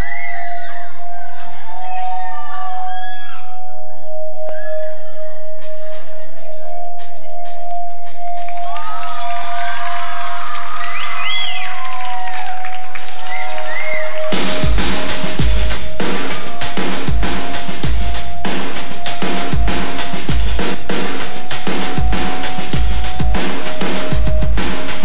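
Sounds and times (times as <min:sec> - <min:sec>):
audience screaming and cheering: 0:00.0 - 0:03.8, 0:08.4 - 0:16.6
drums: 0:04.4 - 0:25.0.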